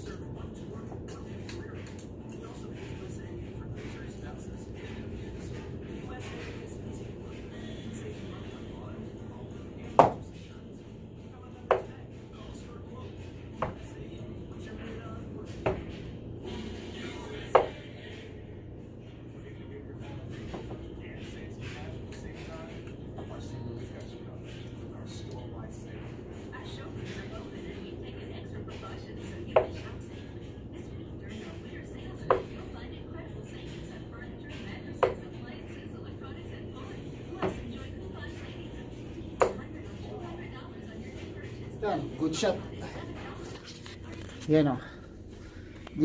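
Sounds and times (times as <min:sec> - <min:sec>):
darts hitting dartboard: 0:09.9 - 0:10.3, 0:13.6 - 0:13.8, 0:17.5 - 0:17.8
dart striking dartboard: 0:10.0 - 0:10.2.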